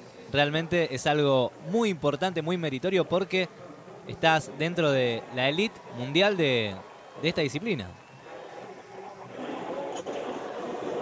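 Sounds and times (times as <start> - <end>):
background murmur: 0.0 - 11.0
faint distant voices: 2.5 - 11.0.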